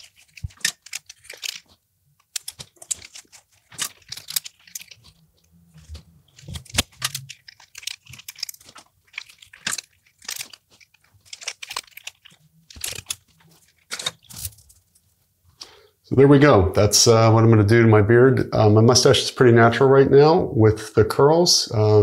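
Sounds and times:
beard hair rustling and crackling: 0.0 - 15.6.

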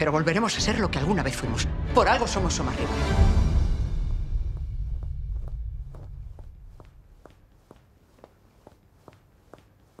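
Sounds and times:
low rumble: 3.3 - 7.2
shoe heels clicking on stone: 4.5 - 10.0.

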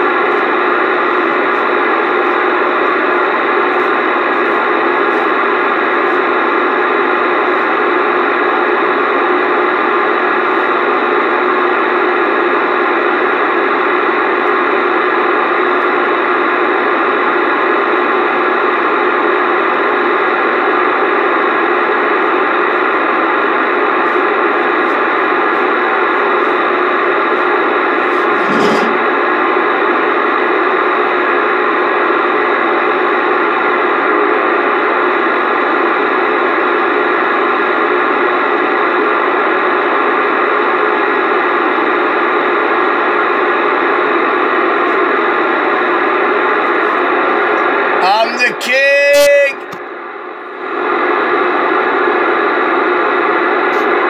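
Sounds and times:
radio static hiss: 0.0 - 8.4, 17.8 - 29.6, 43.3 - 49.8.

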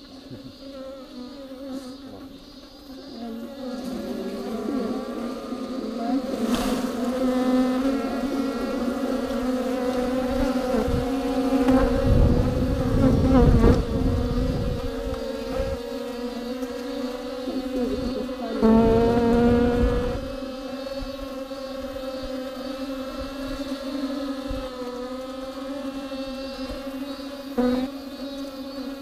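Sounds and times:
bees buzzing: 0.0 - 29.0.

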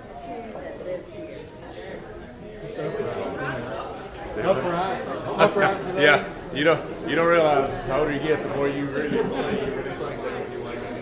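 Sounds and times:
people chatting in large room: 0.0 - 11.0.

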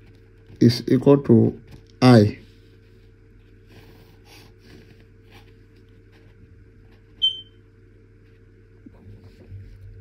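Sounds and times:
low steady hum: 0.0 - 10.0
short high-pitched squeak: 7.2 - 7.5.

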